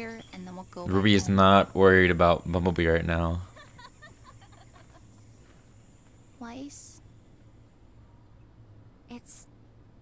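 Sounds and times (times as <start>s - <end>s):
faint bird chirps: 0.0s - 9.6s
low steady hum: 0.0s - 10.0s.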